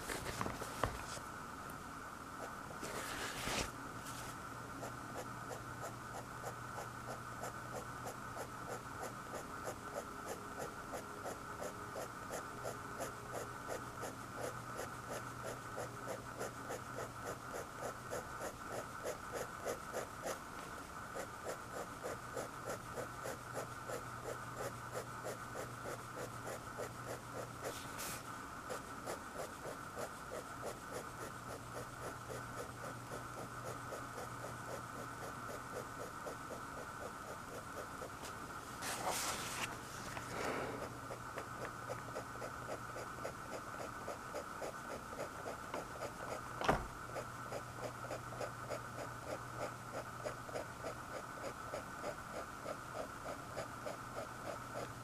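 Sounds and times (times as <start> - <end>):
faint steady hum: 0.0 - 55.0
pen scratching on paper: 4.8 - 20.4, 21.1 - 39.7, 41.9 - 46.4.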